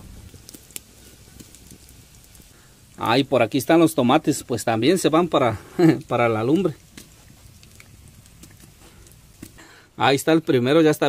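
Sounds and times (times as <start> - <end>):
food frying in oil: 0.0 - 10.8
wood fire crackling and popping: 0.0 - 11.0.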